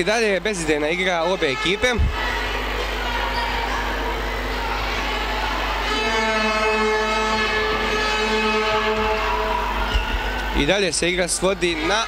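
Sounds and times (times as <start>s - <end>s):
low hum in sports hall: 0.0s - 12.0s
held horn-like note: 5.8s - 9.8s.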